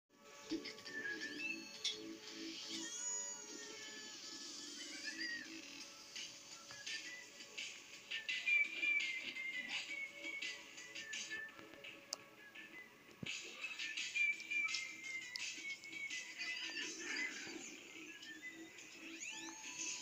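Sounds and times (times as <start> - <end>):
cartoon music from television: 0.1 - 20.0.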